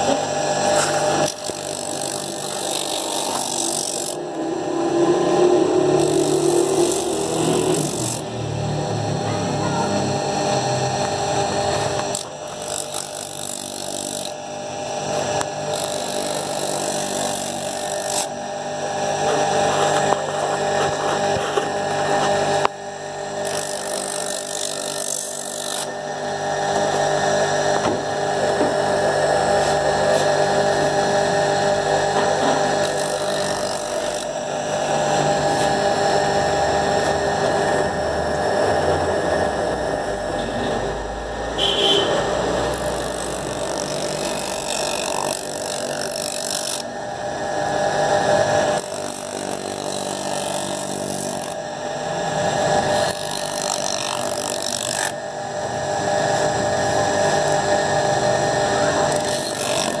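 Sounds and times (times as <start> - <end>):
grinding machine motor humming: 0.0 - 60.0.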